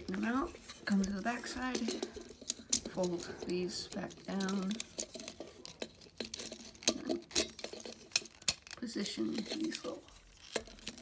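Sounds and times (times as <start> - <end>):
plastic toy parts clicking: 1.0 - 11.0.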